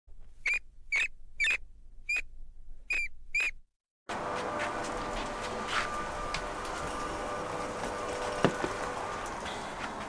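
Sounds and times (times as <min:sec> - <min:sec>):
short high-pitched squeaks: 0:00.4 - 0:02.3, 0:02.9 - 0:03.6.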